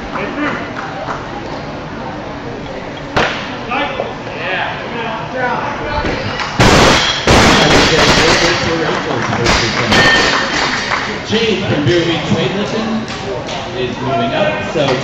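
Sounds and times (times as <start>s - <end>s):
metal clanks of bar and plates: 9.5s - 10.5s.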